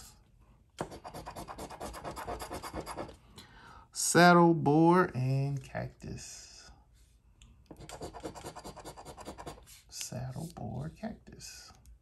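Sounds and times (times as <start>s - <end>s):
coin scratching lottery ticket: 0.9s - 3.1s, 7.8s - 9.6s.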